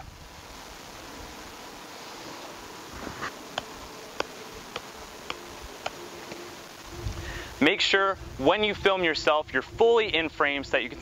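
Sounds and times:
faint steady buzz: 0.0s - 11.0s.

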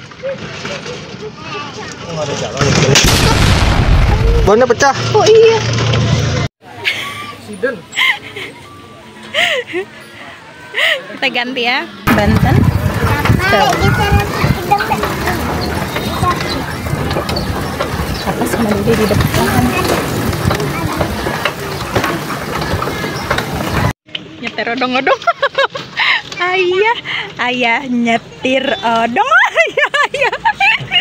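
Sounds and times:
metal cart frame rattling: 12.1s - 23.9s.

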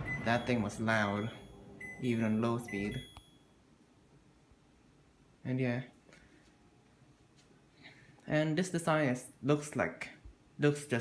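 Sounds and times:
kitchen range hood running: 0.0s - 3.0s
brief high beep: 0.0s - 3.5s.

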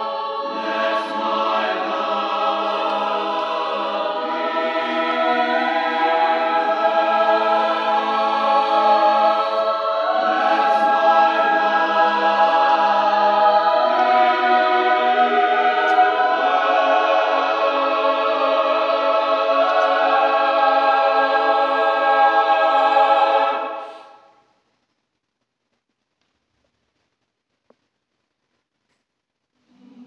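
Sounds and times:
choir singing sustained chords: 0.0s - 24.4s.

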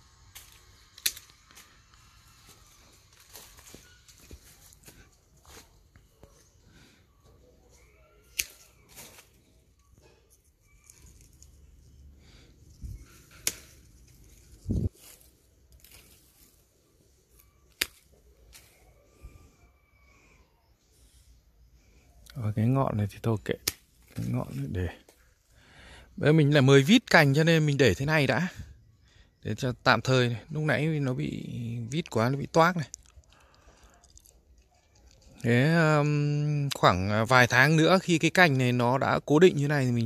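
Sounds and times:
pruning shears snipping: 0.3s - 2.0s, 8.2s - 9.4s, 12.7s - 16.6s, 17.4s - 18.8s, 23.5s - 25.2s.

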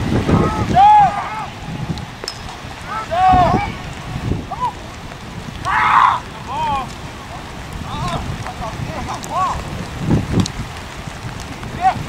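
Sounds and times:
rain: 0.0s - 12.0s
wind on microphone: 0.0s - 12.0s
distant shouting voices: 0.2s - 5.0s, 5.6s - 8.3s.

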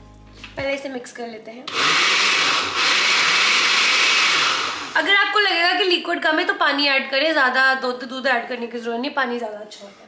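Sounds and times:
blender running: 1.7s - 5.4s.

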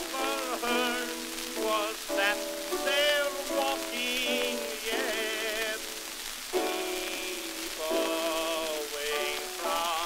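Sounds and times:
man singing with vibrato: 0.0s - 10.0s
piano accompaniment: 0.0s - 10.0s
record surface hiss and crackle: 0.0s - 10.0s.

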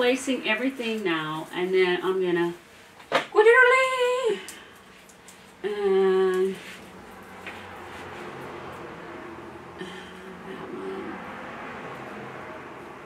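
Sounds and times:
woman humming: 5.6s - 6.6s, 9.8s - 11.2s.

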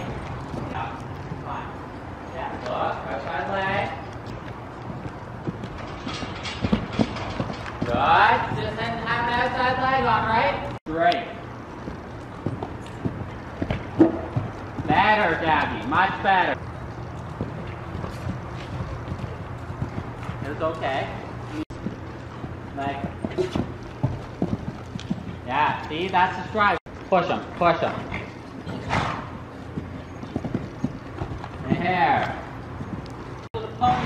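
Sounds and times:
horse hooves cantering on dirt: 0.0s - 33.8s.

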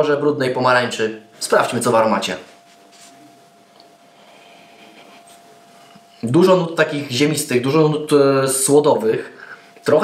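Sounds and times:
faint steady whine: 0.0s - 10.0s
nasal inhale: 4.1s - 5.0s, 9.4s - 9.8s.

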